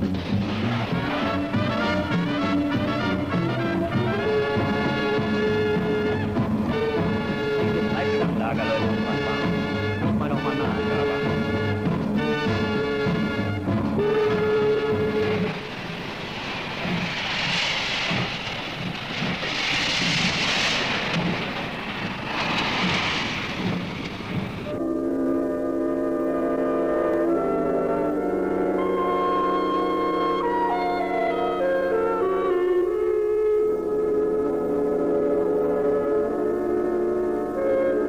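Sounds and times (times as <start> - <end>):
music: 0.0 - 15.8, 24.7 - 38.0
coal pouring down a chute: 14.8 - 24.6.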